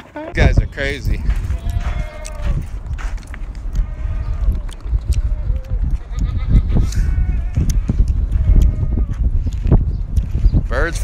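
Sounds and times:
steady low rumble: 0.3s - 11.0s.

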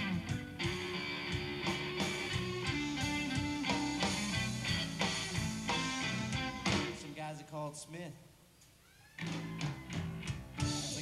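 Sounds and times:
electric guitar: 0.0s - 7.1s, 8.9s - 11.0s
electric blues band: 0.0s - 7.2s, 9.1s - 11.0s.

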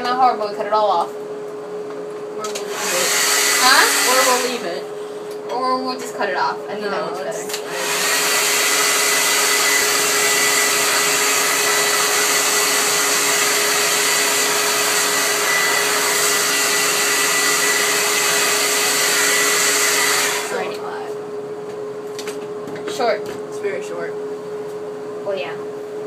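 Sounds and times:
hair dryer blowing: 2.4s - 5.0s, 7.4s - 21.0s.

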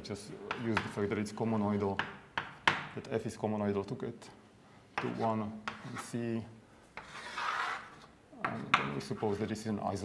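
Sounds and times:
chalk scratching on blackboard: 0.5s - 2.6s, 5.0s - 6.2s, 7.0s - 9.7s
chalk tapping on blackboard: 0.5s - 3.0s, 5.0s - 6.2s, 6.9s - 9.6s.

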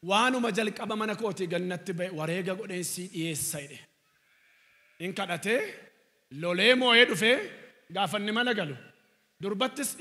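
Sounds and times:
man preaching into a microphone: 0.0s - 3.9s, 5.0s - 10.0s.

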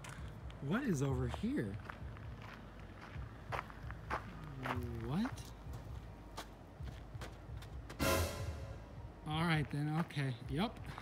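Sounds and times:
footsteps crunching on gravel: 0.0s - 8.0s.

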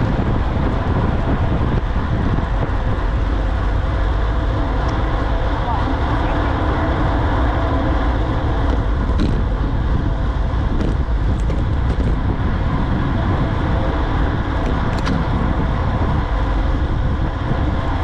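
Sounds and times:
road noise: 0.0s - 18.0s
wind rush on microphone: 0.0s - 18.0s.

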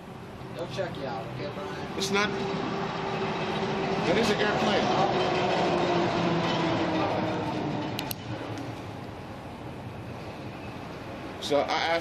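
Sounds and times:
aircraft rumbling overhead: 1.0s - 11.4s.

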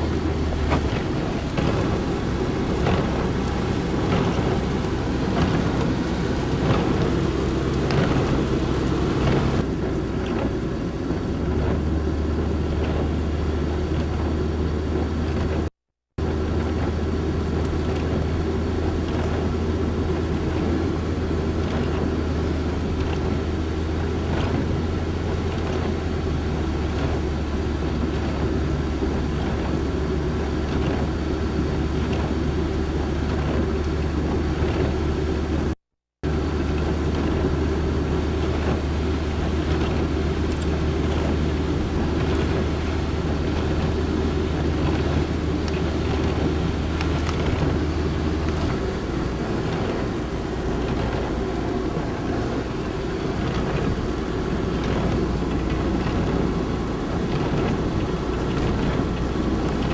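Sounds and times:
engine and tyre noise: 0.0s - 59.9s
rain: 0.0s - 59.9s
windshield wipers: 0.0s - 59.9s.

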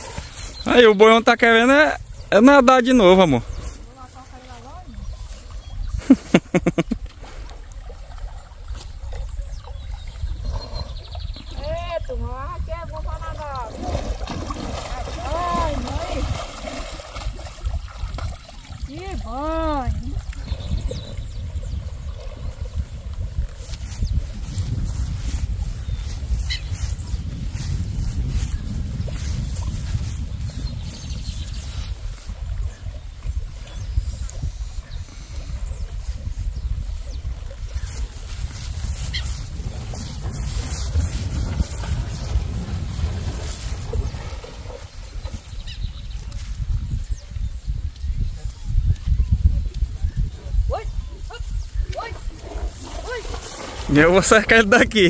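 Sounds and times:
horse legs sloshing water: 0.0s - 2.3s, 2.9s - 55.0s
wind rumble on microphone: 0.0s - 55.0s.

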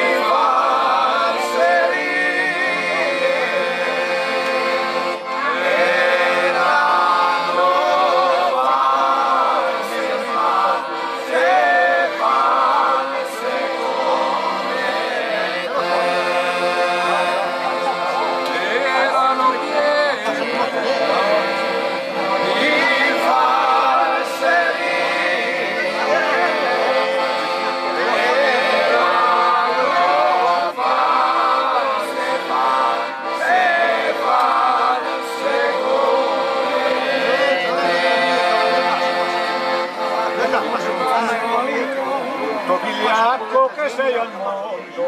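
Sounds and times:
accordion sustained chords: 0.0s - 45.0s
men singing folk song: 0.0s - 45.0s.

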